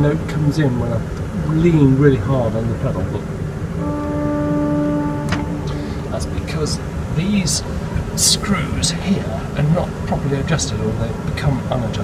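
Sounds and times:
pipe organ note: 0:03.8 - 0:08.2.

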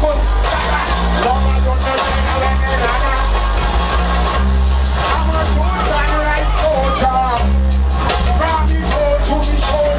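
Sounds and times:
dub music with deep bass: 0:00.0 - 0:09.9.

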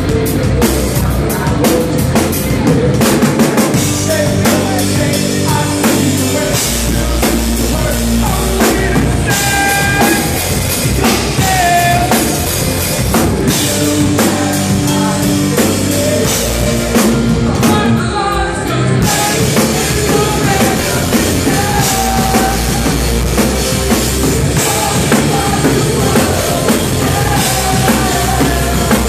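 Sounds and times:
bass drum: 0:00.0 - 0:18.0, 0:19.0 - 0:29.0
hard rock band playing: 0:00.0 - 0:29.0.

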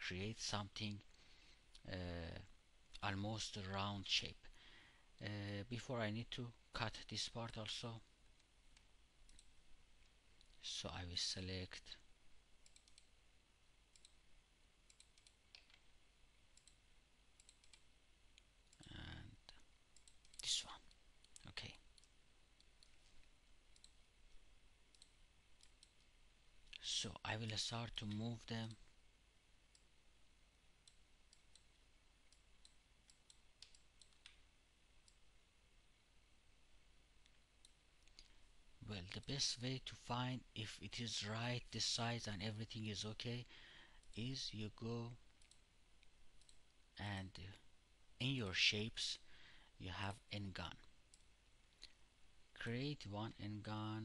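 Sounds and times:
computer mouse clicks: 0:08.4 - 0:10.6, 0:12.6 - 0:13.1, 0:13.9 - 0:14.2, 0:14.9 - 0:15.9, 0:16.5 - 0:16.8, 0:17.4 - 0:18.9, 0:20.0 - 0:24.1, 0:24.9 - 0:26.1, 0:30.8 - 0:34.4, 0:45.3 - 0:46.7
faint computer mouse clicks: 0:12.6 - 0:13.1, 0:13.9 - 0:14.2, 0:17.4 - 0:17.8.

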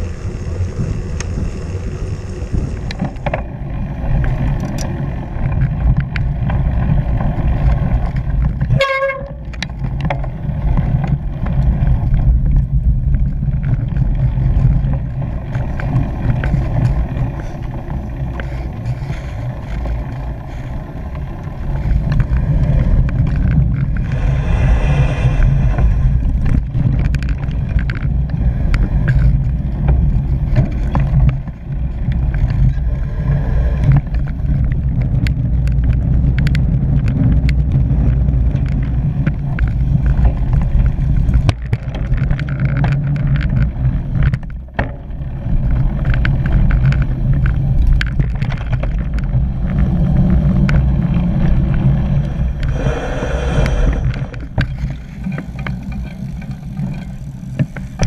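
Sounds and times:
bike tyres rumbling over dirt: 0:00.0 - 0:58.0
wind buffeting: 0:00.0 - 0:58.0.

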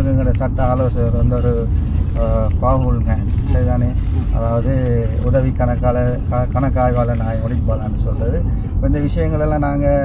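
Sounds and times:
car cabin rumble: 0:00.0 - 0:10.0
man talking: 0:00.0 - 0:10.0.

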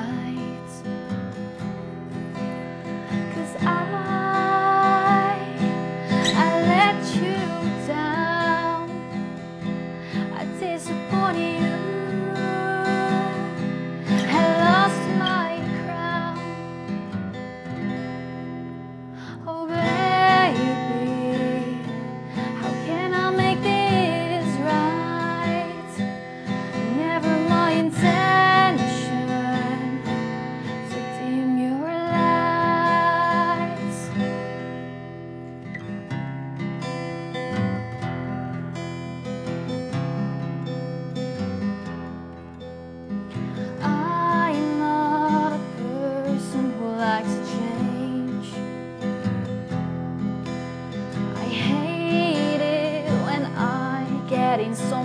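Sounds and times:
woman singing: 0:00.0 - 0:01.2, 0:02.8 - 0:16.7, 0:19.2 - 0:34.4, 0:43.6 - 0:48.9, 0:51.2 - 0:55.0
fingerpicked acoustic guitar: 0:00.0 - 0:55.0.

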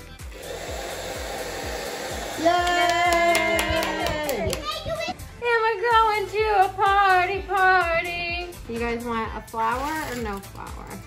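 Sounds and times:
hair dryer running: 0:00.0 - 0:04.6
background music beat: 0:00.0 - 0:11.0.

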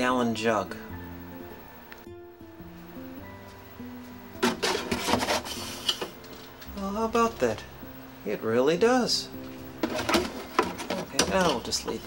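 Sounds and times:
soft guitar music: 0:00.0 - 0:12.0
plastic jug clattering on shelf: 0:04.4 - 0:06.1, 0:09.8 - 0:12.0.

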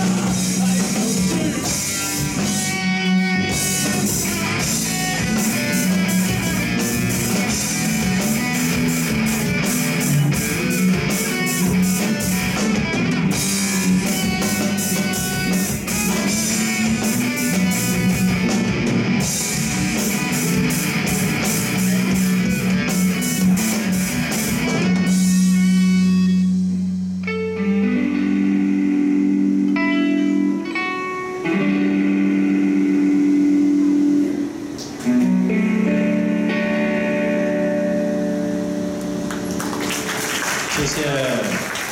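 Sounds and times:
drum kit with cymbals: 0:00.0 - 0:27.2
bass guitar: 0:00.0 - 0:41.9
electric guitars: 0:00.0 - 0:41.9.

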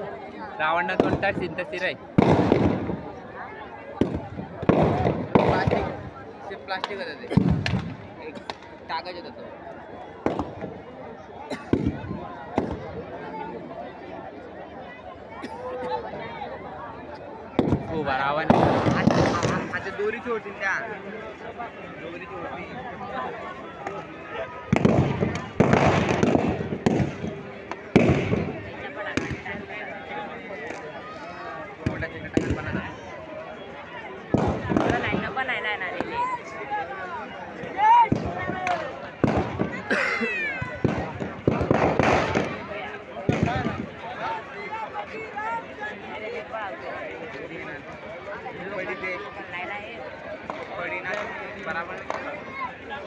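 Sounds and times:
firecrackers banging: 0:00.8 - 0:03.3, 0:03.9 - 0:08.9, 0:10.2 - 0:10.9, 0:11.6 - 0:13.0, 0:17.5 - 0:21.5, 0:23.4 - 0:29.8, 0:31.8 - 0:33.1, 0:34.2 - 0:36.3, 0:37.6 - 0:44.2
sharp crack: 0:02.2 - 0:03.0, 0:04.0 - 0:06.0, 0:06.8 - 0:08.8, 0:10.2 - 0:10.7, 0:17.6 - 0:20.2, 0:24.7 - 0:29.5, 0:34.3 - 0:35.3, 0:38.1 - 0:39.9, 0:40.8 - 0:43.9.

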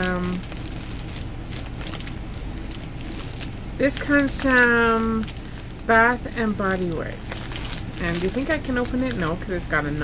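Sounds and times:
low background hum: 0:00.0 - 0:10.0
plastic bag rustling: 0:00.0 - 0:10.0.

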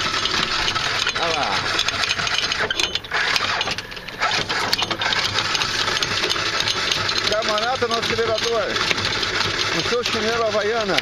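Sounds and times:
anchor chain clattering out: 0:00.0 - 0:11.0.

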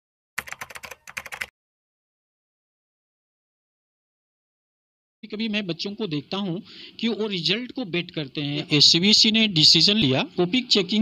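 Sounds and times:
rapid keyboard typing: 0:00.4 - 0:01.5.

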